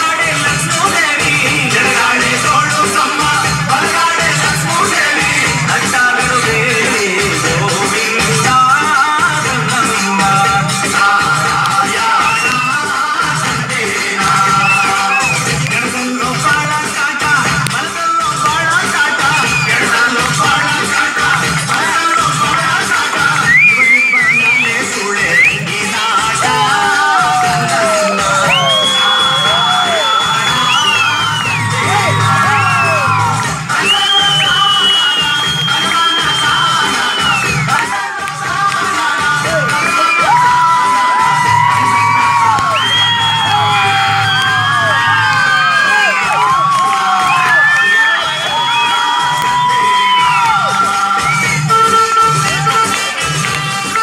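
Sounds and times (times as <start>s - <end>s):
folk dance music with drumbeat: 0.0s - 54.0s
children cheering and shouting: 26.0s - 33.8s, 37.4s - 51.3s.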